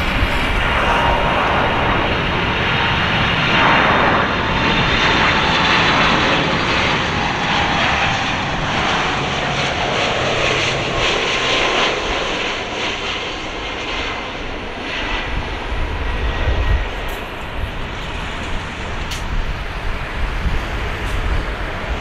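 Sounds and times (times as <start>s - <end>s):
jet airliner on approach: 0.0s - 22.0s.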